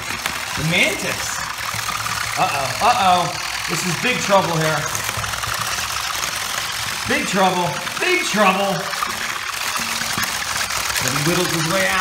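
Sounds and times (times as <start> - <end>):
plastic legs rattling on wood: 0.0 - 12.0
small motors running: 0.0 - 12.0.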